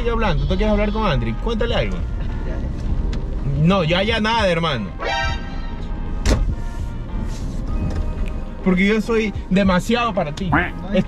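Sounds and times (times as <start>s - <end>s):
car cabin rumble: 5.4s - 11.0s.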